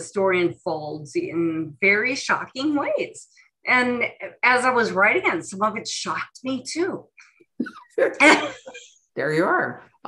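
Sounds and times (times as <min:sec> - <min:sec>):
woman laughing: 0:07.6 - 0:08.9.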